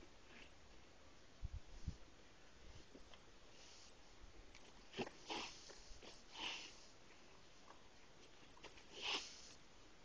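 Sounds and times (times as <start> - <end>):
pony sniffing: 4.9 - 7.0, 8.6 - 9.6.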